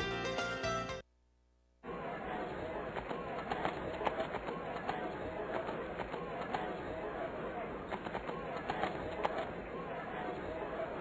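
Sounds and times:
crowd murmur: 1.8 - 11.0.

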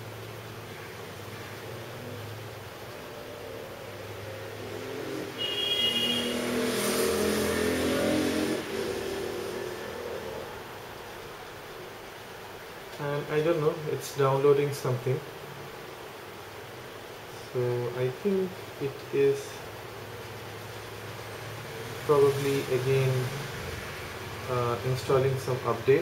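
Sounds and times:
low steady room hum: 0.0 - 5.4, 8.4 - 26.0
vehicle passing by: 0.9 - 10.9, 20.4 - 26.0.

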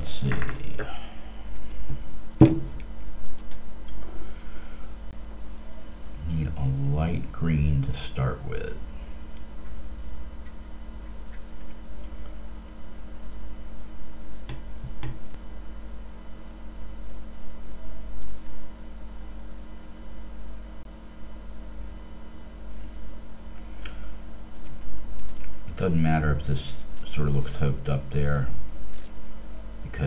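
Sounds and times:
low electrical hum: 0.0 - 30.0.

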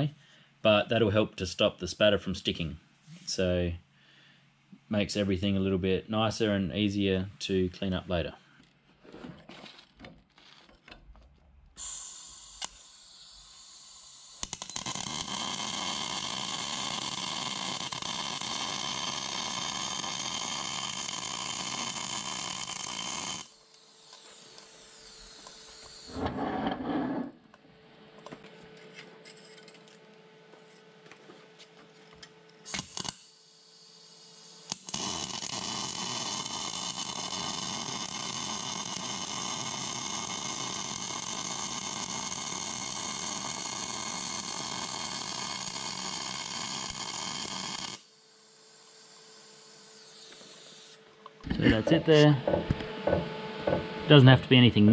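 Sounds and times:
welder arc crackling: 11.8 - 26.3, 32.7 - 33.3, 34.2 - 51.0.

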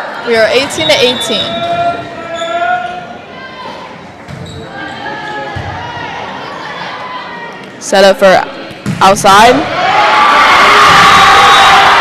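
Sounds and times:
spectators' voices: 0.0 - 12.0
volleyball hits: 8.6 - 9.7.

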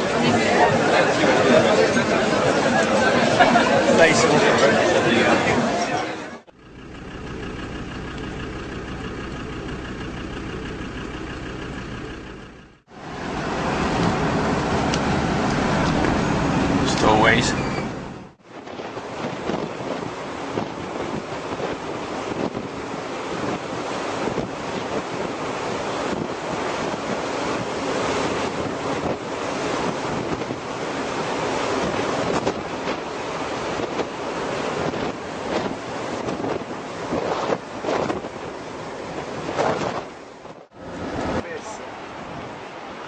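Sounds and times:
wind on microphone: 17.5 - 41.4.

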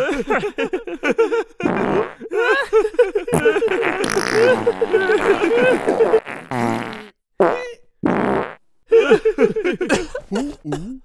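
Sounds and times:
cartoon fart sound effects: 1.7 - 2.2, 3.4 - 8.6.

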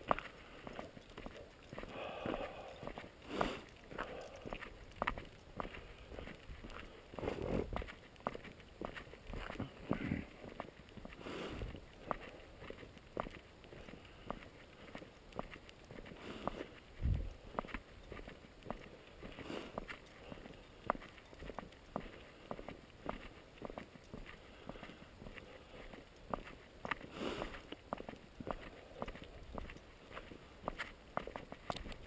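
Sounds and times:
footsteps on gravel road: 0.0 - 32.0.

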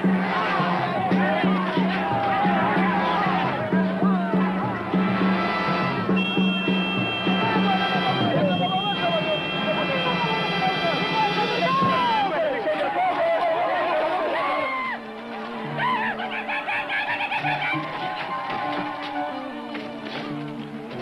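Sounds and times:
men shouting together: 0.0 - 5.0.

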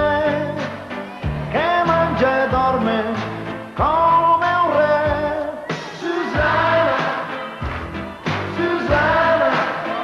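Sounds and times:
pop band backing: 0.0 - 10.0.

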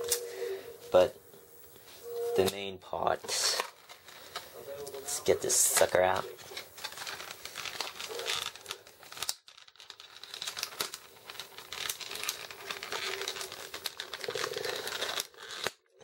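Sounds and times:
plastic packaging crinkling: 1.7 - 16.0.

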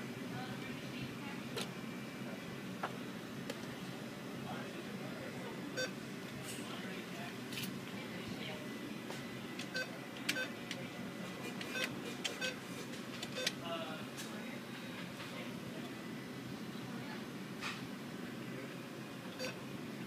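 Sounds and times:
steady background hum: 0.0 - 20.0
keypad beeps: 9.7 - 10.5, 11.7 - 12.6, 13.4 - 13.6, 19.4 - 19.6.

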